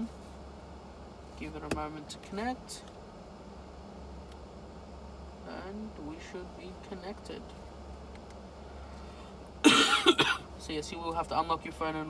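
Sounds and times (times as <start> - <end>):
low steady hum: 0.0 - 12.0
man coughing: 9.6 - 10.5.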